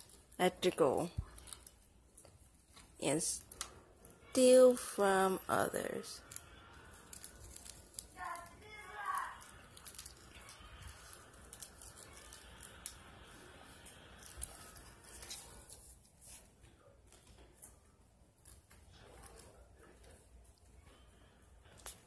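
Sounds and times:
faint voice: 8.2s - 9.5s.

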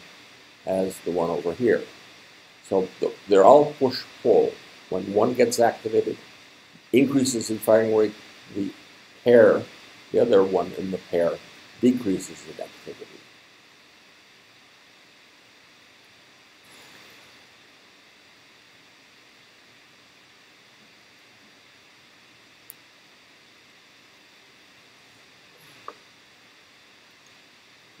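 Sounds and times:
low steady hiss: 0.0s - 28.0s
faint clicks: 22.6s - 22.9s.

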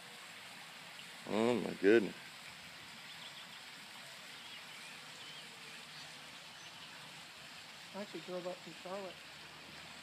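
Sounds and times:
steady low hiss: 0.0s - 10.0s
small birds chirping: 3.0s - 7.3s.

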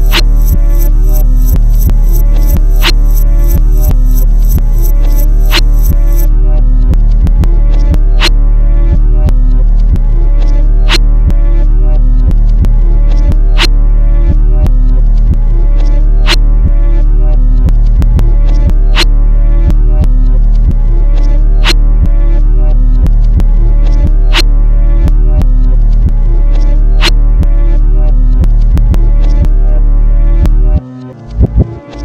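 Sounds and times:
heavy bass line: 0.0s - 32.0s
hip-hop beat: 0.0s - 32.0s.

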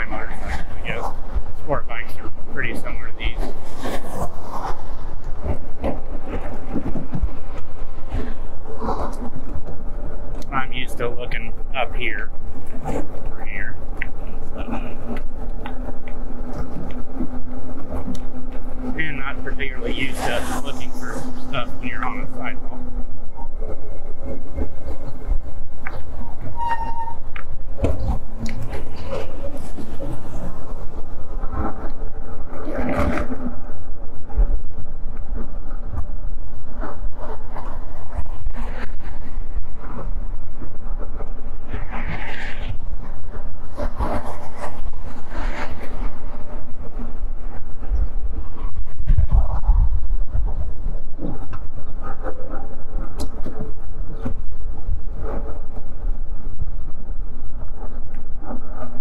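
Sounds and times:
bike tyre rumble on pavement: 0.0s - 59.0s
wind buffeting microphone: 0.0s - 59.0s
car traffic passing: 12.0s - 26.4s.

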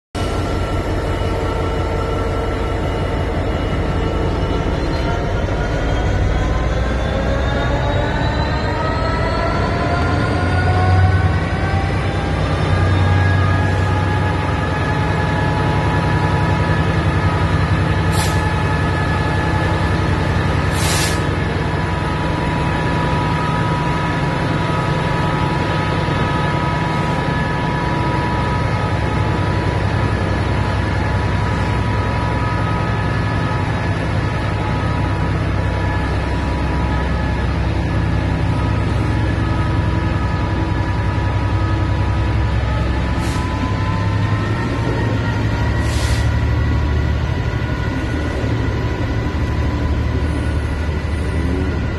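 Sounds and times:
diesel locomotive rumble: 0.2s - 51.9s
short air hisses: 20.7s - 21.3s, 45.8s - 46.3s.

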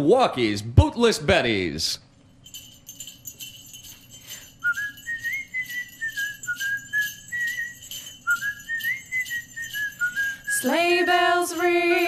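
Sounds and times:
sleigh bells shaken: 2.4s - 12.0s
person whistling a melody: 4.6s - 11.6s.

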